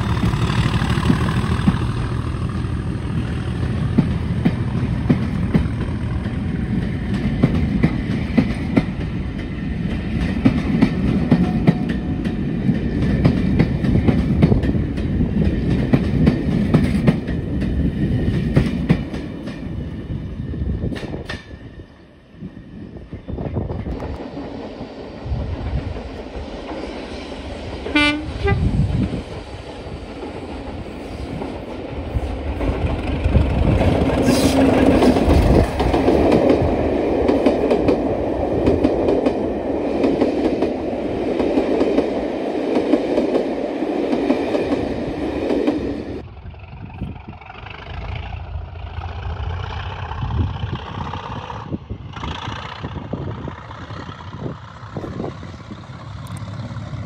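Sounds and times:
diesel locomotive engine: 0.0s - 57.0s
train horn: 27.9s - 28.9s.

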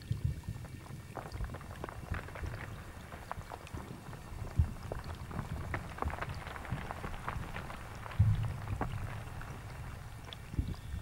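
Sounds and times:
water bubbling and gurgling: 0.0s - 11.0s.

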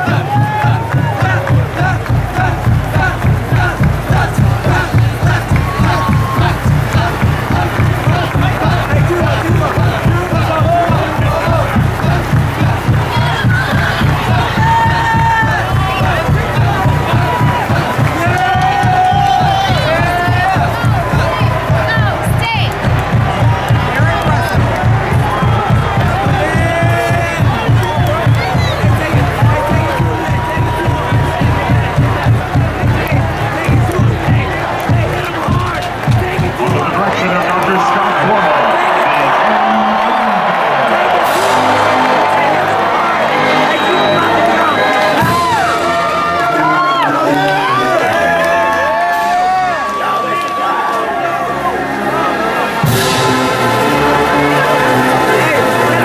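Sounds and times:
crowd shouts: 0.0s - 56.0s
marching band drum cadence: 0.0s - 56.0s
stadium crowd cheering: 0.0s - 56.0s.

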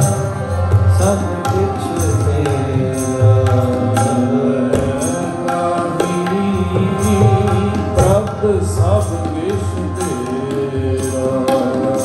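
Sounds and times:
harmonium chords: 0.0s - 12.0s
tabla strokes: 0.0s - 12.0s
voices singing devotional song: 0.0s - 12.0s.

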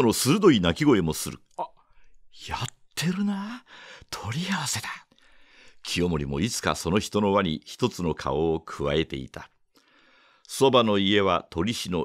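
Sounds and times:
man reading aloud: 0.0s - 5.1s, 5.8s - 9.6s, 10.5s - 12.0s.

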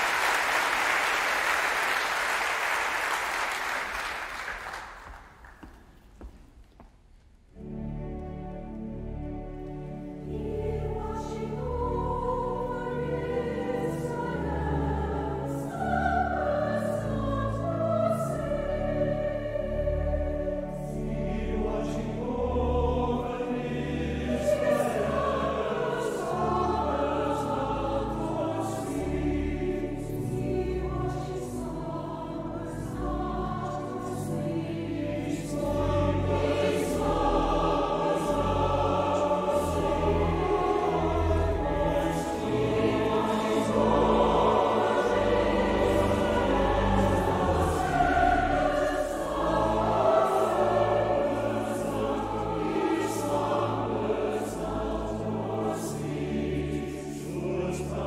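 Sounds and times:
mixed choir singing: 9.9s - 58.0s.

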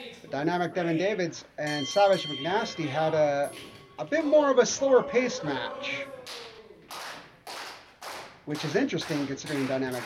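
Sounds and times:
handclaps with echo: 6.2s - 10.0s.

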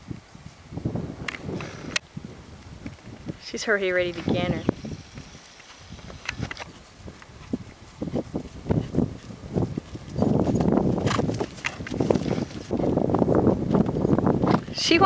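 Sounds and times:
horse hooves trotting on dirt: 2.6s - 14.8s.

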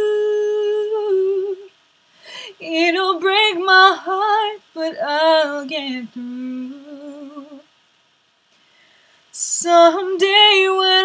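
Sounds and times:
woman singing a long note: 0.0s - 1.7s.

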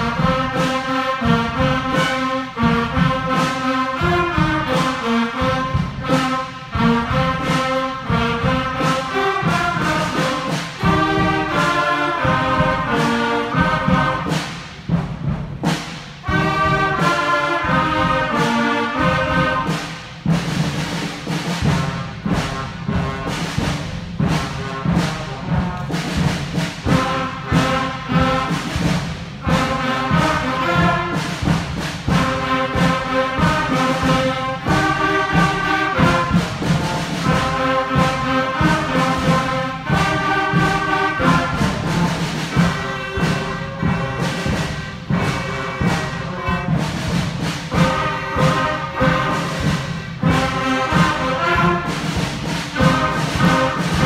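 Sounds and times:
concert band playing: 0.0s - 54.0s.

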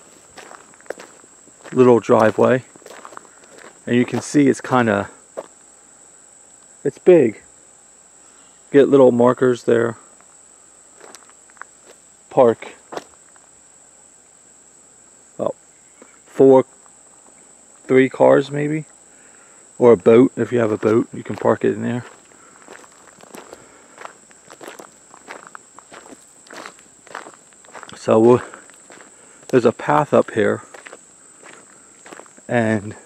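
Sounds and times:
footsteps on gravel: 0.0s - 4.8s, 11.0s - 12.0s, 12.9s - 13.4s, 20.6s - 33.0s
high-pitched insect chorus: 0.0s - 33.0s.

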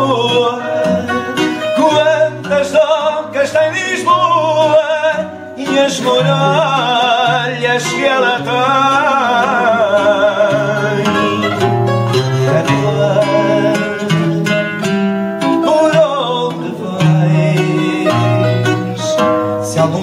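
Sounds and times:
person singing: 0.0s - 20.0s
plucked guitars: 0.0s - 20.0s.

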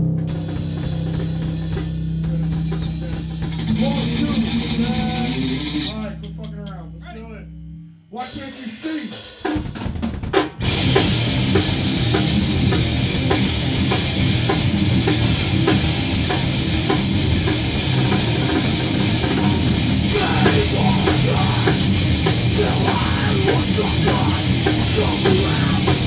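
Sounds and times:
electric guitar: 0.0s - 6.2s, 10.6s - 26.0s
drum kit with cymbals: 0.0s - 7.4s, 8.2s - 26.0s.

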